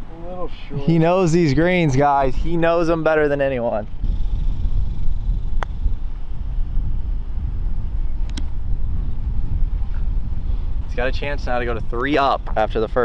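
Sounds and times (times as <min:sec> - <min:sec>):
wind buffeting microphone: 0:00.0 - 0:13.0
putter striking golf ball: 0:05.5 - 0:05.8.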